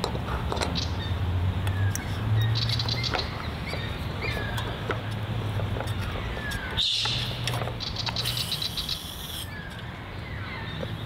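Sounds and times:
birds chirping: 0:00.3 - 0:11.0
canister clicks and rasping hiss: 0:05.8 - 0:09.9.

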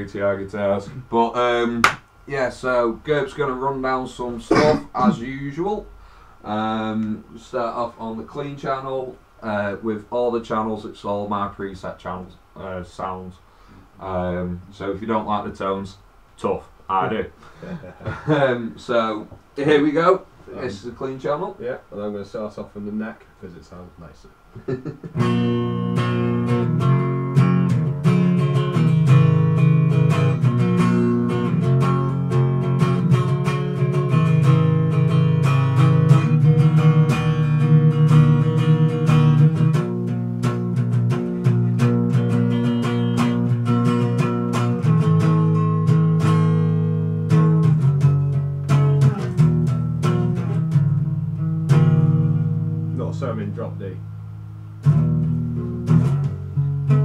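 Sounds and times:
clean electric guitar playing: 0:25.1 - 0:53.9, 0:54.8 - 0:57.0.

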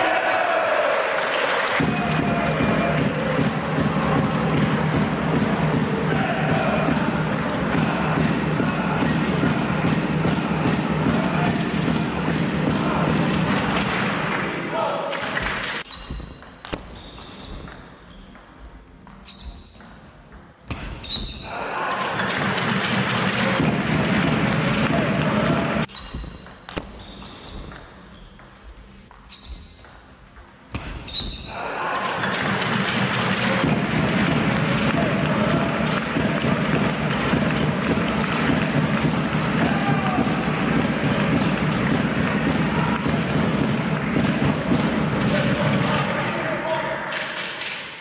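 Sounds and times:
crowd cheering: 0:00.0 - 0:15.8, 0:21.5 - 0:25.9, 0:31.5 - 0:47.4
shoe squeaks: 0:15.8 - 0:19.9, 0:20.9 - 0:21.6, 0:25.9 - 0:30.0, 0:31.0 - 0:31.6.

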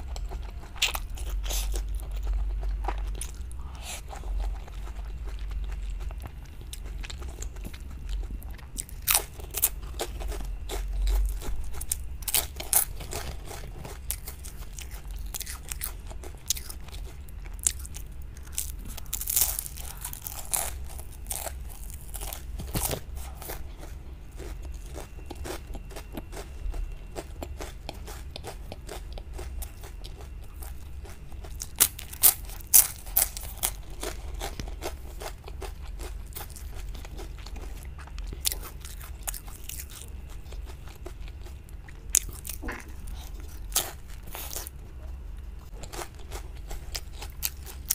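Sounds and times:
crunchy chewing of fried food: 0:00.0 - 0:47.9.

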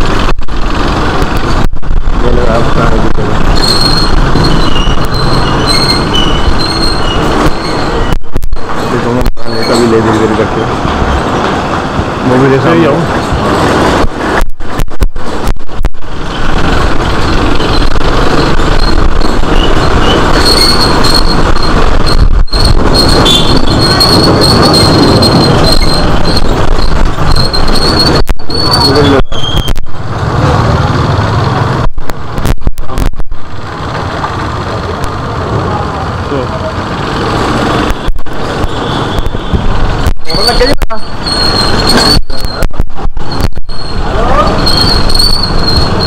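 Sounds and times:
rumbling road noise of motorbike: 0:00.0 - 0:46.0.

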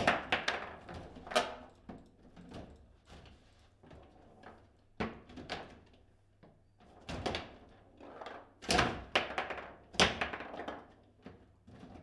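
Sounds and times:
table football knocks and clacks: 0:00.0 - 0:01.6, 0:08.7 - 0:11.0.

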